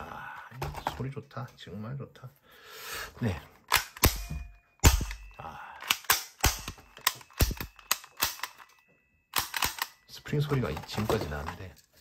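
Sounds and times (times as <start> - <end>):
airsoft pistol action clicks: 3.7 - 8.7, 9.3 - 10.0.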